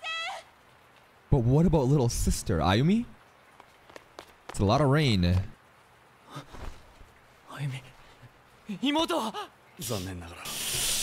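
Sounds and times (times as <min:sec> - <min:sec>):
steady hiss: 0:00.0 - 0:11.0
man speaking: 0:08.7 - 0:10.6.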